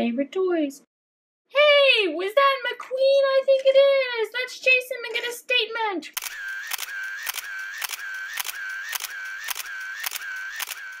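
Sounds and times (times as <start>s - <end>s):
looped click and high tone: 6.2s - 11.0s.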